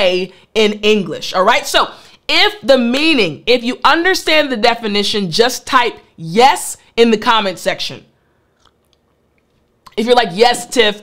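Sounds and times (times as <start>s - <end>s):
soft mouth clicks: 8.6s - 10.0s.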